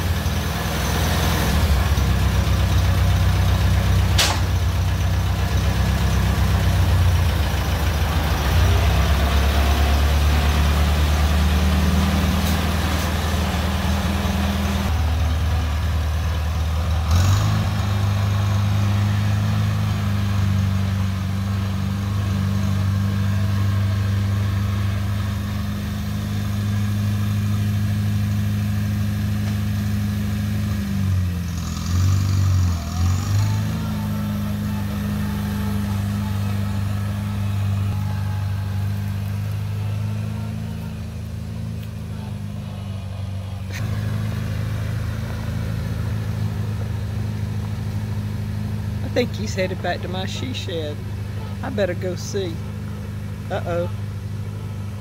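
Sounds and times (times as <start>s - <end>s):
tractor engine running: 0.0s - 55.0s.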